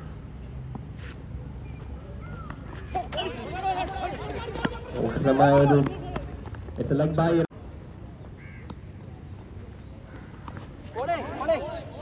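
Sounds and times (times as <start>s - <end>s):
players shouting: 2.2s - 6.6s.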